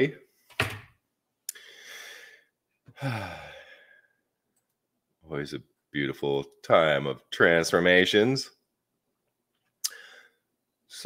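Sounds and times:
man sighing: 1.5s - 4.1s, 9.8s - 10.3s
man breathing in: 1.5s - 4.2s, 9.9s - 10.5s.

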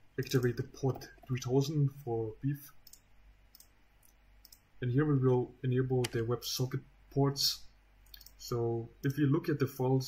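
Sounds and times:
computer mouse clicks: 2.8s - 4.7s, 8.0s - 8.4s.

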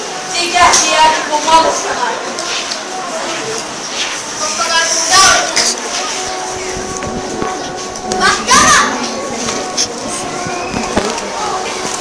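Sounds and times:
child calling out: 8.2s - 9.0s.

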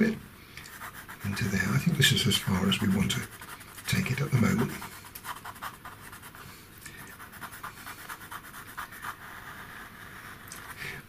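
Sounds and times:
pastel pencil scratching on paper: 0.7s - 11.0s.

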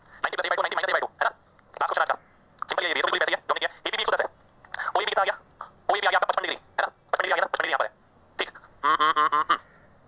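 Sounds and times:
man's drawn-out syllable: 4.9s - 9.6s.

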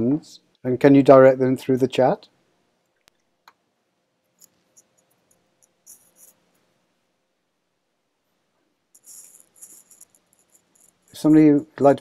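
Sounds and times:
scratchy rustling near microphone: 4.4s - 6.7s, 9.0s - 11.3s.

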